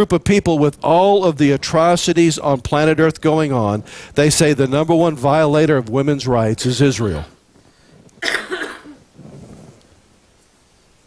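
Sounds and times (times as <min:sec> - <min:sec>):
soft breath: 0:03.8 - 0:04.2, 0:07.5 - 0:08.2, 0:09.1 - 0:10.0
throaty cough-like breath: 0:08.2 - 0:09.0.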